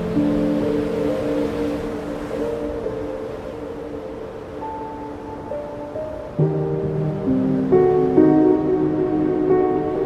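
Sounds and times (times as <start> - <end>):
ambient music with held notes: 0.0 - 10.0
storm surf: 0.0 - 10.0.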